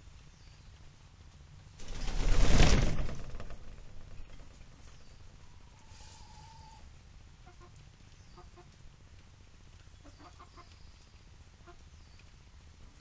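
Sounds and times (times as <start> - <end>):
low background rumble: 1.4 - 7.4.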